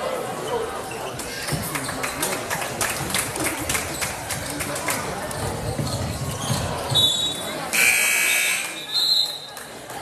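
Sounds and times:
crowd chatter: 0.0s - 10.0s
basketball dribbling: 5.3s - 7.1s
sneakers on gym floor: 5.3s - 7.1s
referee's whistle: 7.0s - 9.5s.

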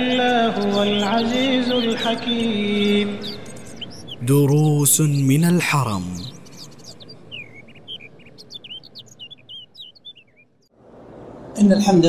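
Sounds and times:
small birds chirping: 0.0s - 10.7s.

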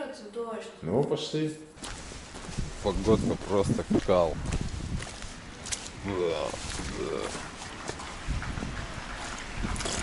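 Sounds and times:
footsteps on wet asphalt: 1.8s - 10.0s
wind rumbling on microphone: 2.0s - 10.0s.

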